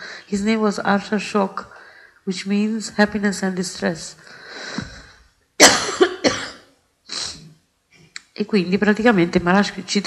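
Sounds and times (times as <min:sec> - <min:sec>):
person coughing: 0:05.6 - 0:06.7.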